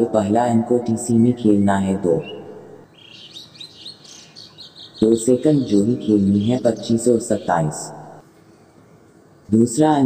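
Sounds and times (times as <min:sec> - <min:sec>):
birds chirping: 0:00.0 - 0:10.0.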